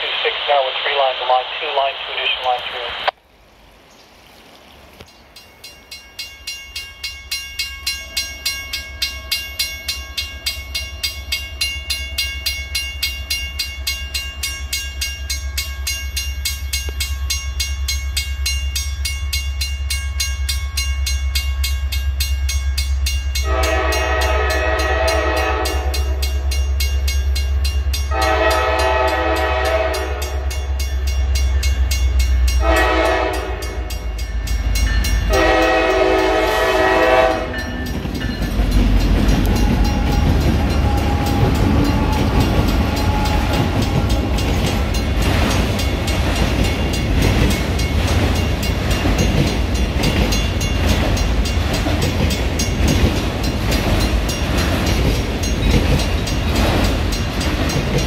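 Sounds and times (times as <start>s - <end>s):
diesel locomotives rumbling: 0.0s - 58.0s
railroad crossing bell ringing: 5.0s - 58.0s
locomotive horn blasts: 23.4s - 26.4s, 28.1s - 30.6s, 32.6s - 34.0s, 35.2s - 37.8s.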